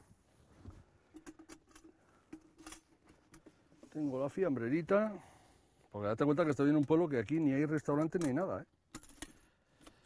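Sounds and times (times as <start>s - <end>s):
clicks and rustles of container: 1.1s - 4.0s.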